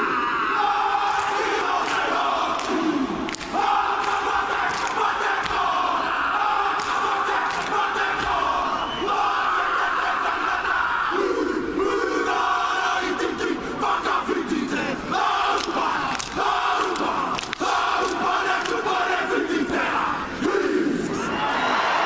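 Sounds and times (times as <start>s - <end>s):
men shouting chant in unison: 0.0s - 21.4s
crowd cheering: 0.0s - 22.0s
hands slapping thighs and chests: 1.2s - 5.8s, 6.6s - 8.5s, 15.5s - 19.0s.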